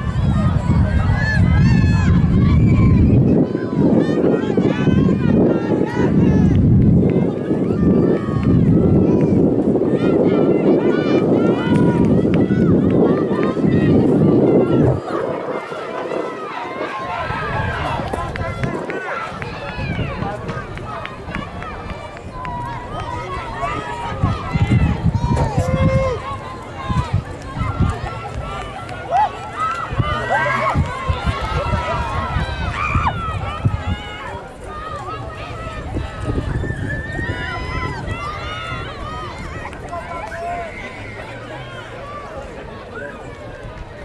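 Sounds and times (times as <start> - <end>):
chatter of many spectators: 0.0 - 44.0.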